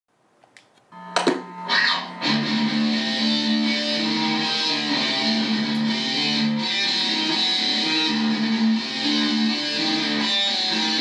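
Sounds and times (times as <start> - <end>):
guitar note ringing: 0.9 - 11.0
guitar strum: 1.0 - 11.0.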